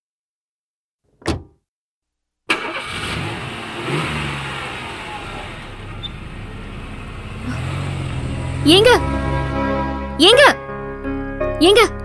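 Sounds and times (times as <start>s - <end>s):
car engine starting and revving: 2.5s - 10.1s.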